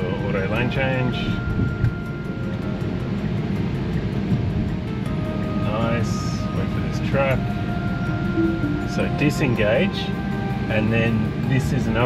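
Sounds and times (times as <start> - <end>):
road and tyre noise inside car: 0.0 - 12.0.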